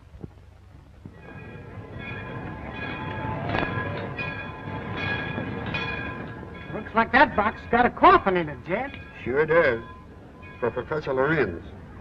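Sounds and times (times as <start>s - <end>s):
train rumble: 0.0s - 12.0s
metal clank: 1.2s - 10.9s.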